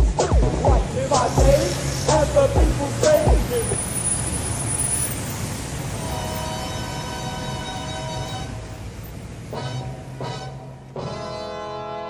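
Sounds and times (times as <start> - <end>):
steady rushing noise: 0.0 - 11.1.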